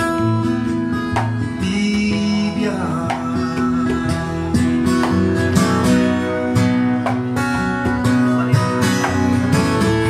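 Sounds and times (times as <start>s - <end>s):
acoustic guitar strumming chords: 0.0s - 10.0s.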